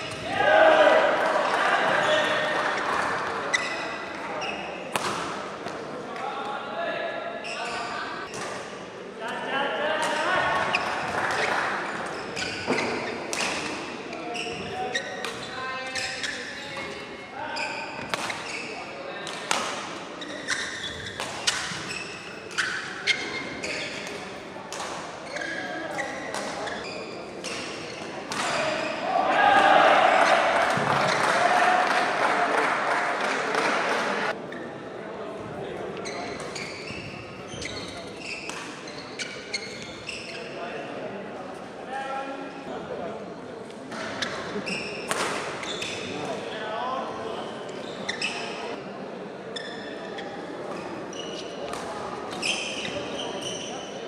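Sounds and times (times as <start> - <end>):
voices calling and chattering: 0.0 - 54.0
shoes squeaking on court: 2.0 - 5.0, 7.4 - 8.6, 10.2 - 19.6, 20.2 - 29.0, 36.0 - 40.6, 43.9 - 46.3, 47.3 - 48.8, 49.5 - 54.0.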